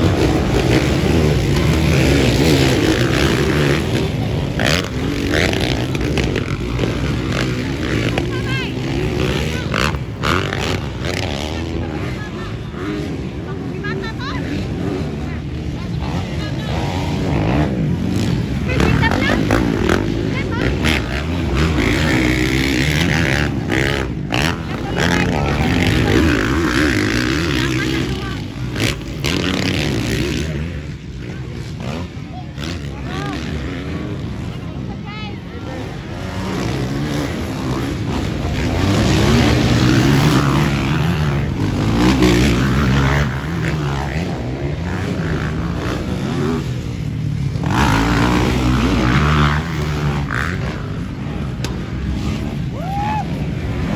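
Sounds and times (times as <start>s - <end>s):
dirt bike engines revving: 0.0s - 53.9s
voices: 0.0s - 53.9s.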